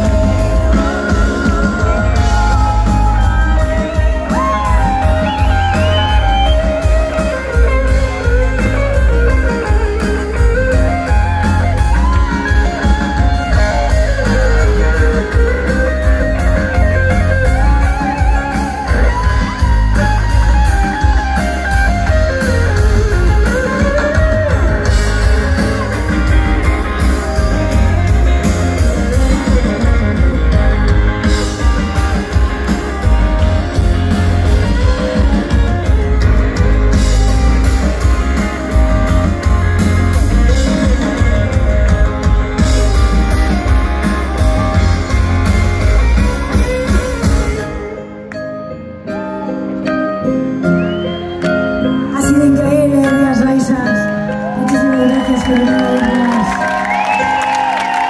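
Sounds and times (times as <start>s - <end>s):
bass and drum groove: 0.0s - 48.0s
electric guitar lead line: 0.0s - 58.0s.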